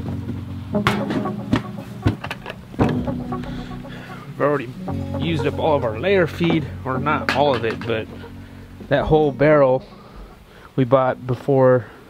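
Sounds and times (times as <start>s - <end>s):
background guitar music: 0.0s - 11.6s.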